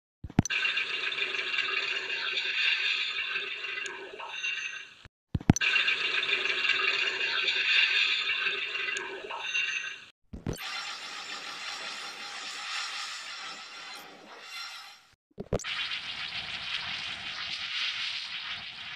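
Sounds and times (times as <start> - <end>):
noisy rattling sound effect: 0.2 - 18.9.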